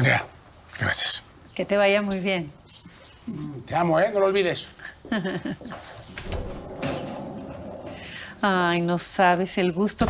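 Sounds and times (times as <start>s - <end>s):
door closing with soft thump: 6.1s - 8.0s.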